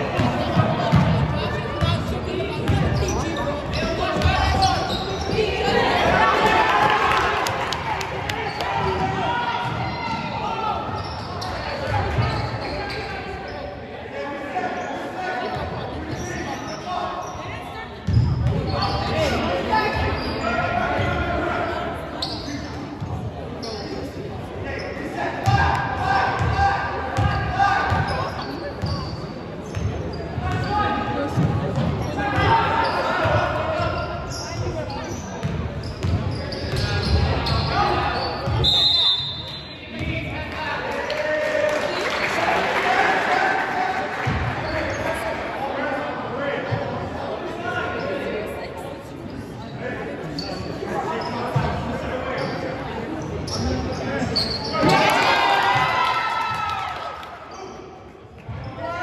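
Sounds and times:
voices of players and spectators: 0:00.0 - 0:59.0.

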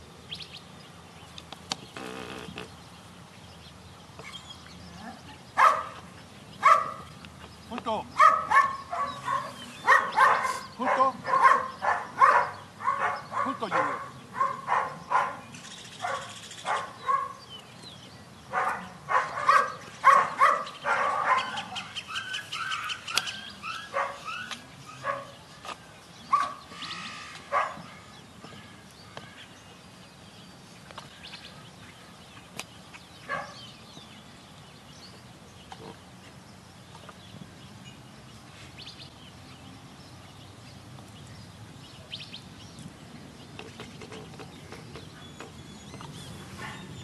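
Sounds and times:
dog barking: 0:05.6 - 0:06.0, 0:06.6 - 0:07.0, 0:08.2 - 0:15.4, 0:16.0 - 0:17.4, 0:18.5 - 0:21.9, 0:22.6 - 0:25.4, 0:26.3 - 0:26.6, 0:27.5 - 0:27.9, 0:33.3 - 0:33.6.

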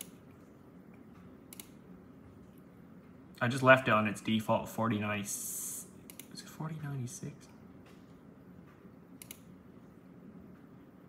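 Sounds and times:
faint computer mouse clicks: 0:09.2 - 0:09.5.

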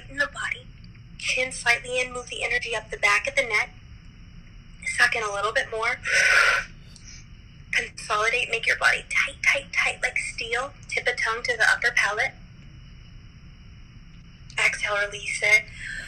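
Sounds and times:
woman speaking over video call: 0:00.0 - 0:00.6, 0:01.2 - 0:03.7, 0:04.8 - 0:06.2, 0:07.8 - 0:12.4, 0:14.5 - 0:16.0
loud breathy hiss: 0:06.0 - 0:07.3.

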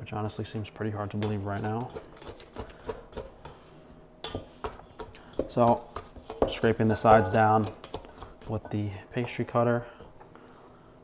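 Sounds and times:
pastry cutter scraping glass bowl: 0:01.1 - 0:03.4, 0:05.0 - 0:08.8.

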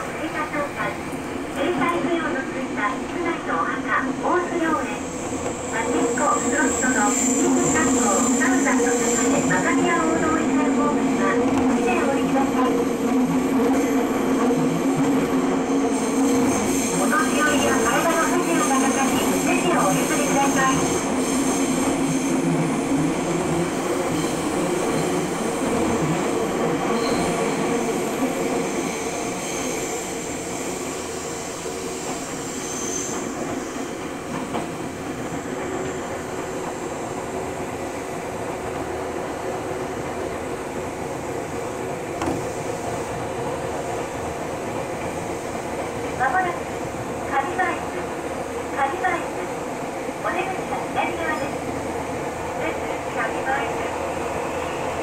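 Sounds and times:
train running through tunnel: 0:00.0 - 0:55.0.

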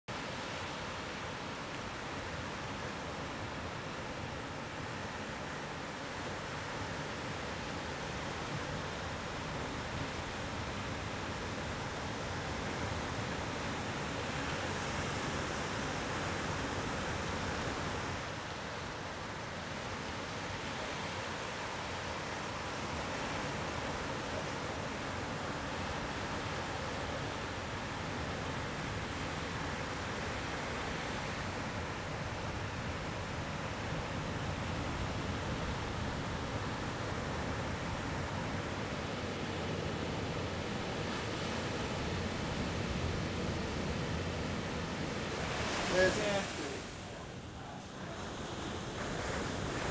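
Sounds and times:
ocean surf breaking: 0:19.6 - 0:49.9.

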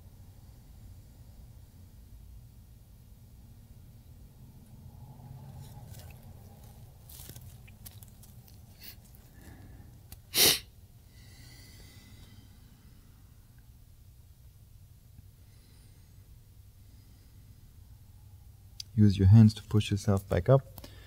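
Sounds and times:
low room hum: 0:00.0 - 0:21.0
soft breaths: 0:05.1 - 0:13.7, 0:15.2 - 0:18.7, 0:20.7 - 0:21.0
person sneezing: 0:10.3 - 0:10.7.

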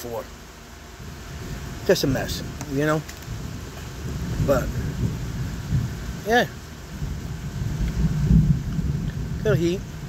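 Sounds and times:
rain on roof: 0:07.0 - 0:10.0.

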